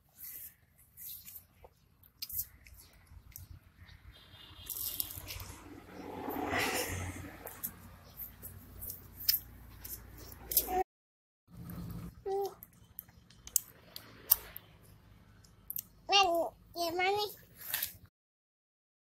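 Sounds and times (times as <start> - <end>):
crunching and wet clicking: 12.4 - 14.7, 15.4 - 16.0.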